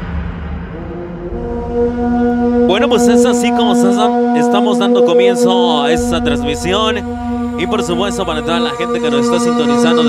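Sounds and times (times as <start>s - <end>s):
held low synth note: 0.6s - 10.0s
person speaking over music: 2.7s - 10.0s.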